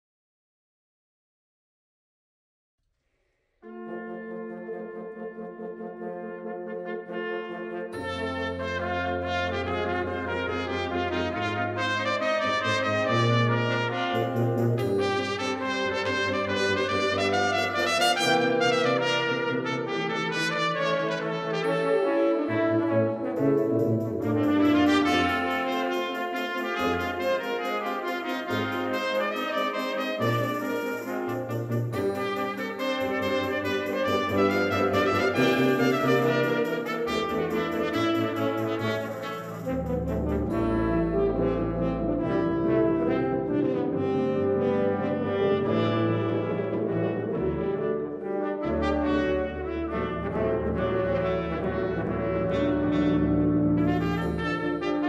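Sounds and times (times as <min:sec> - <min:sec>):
brass ensemble playing: 0:03.6 - 0:55.0.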